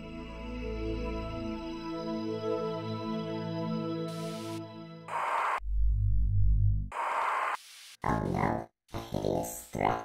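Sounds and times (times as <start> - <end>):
electronic hiss bursts: 4.1 - 5.6, 6.9 - 8.0
loud low pulsing hum: 5.6 - 6.9.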